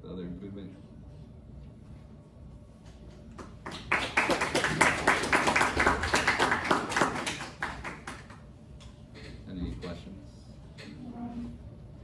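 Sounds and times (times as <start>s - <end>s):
audience applauding: 3.4s - 8.4s.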